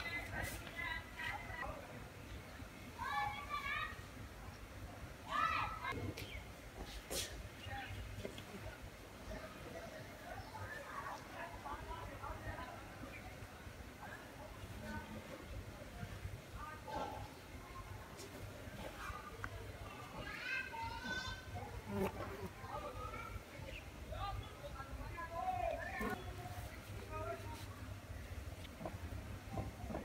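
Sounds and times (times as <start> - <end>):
children's voices: 2.9 - 4.4, 5.2 - 6.1, 16.6 - 24.4.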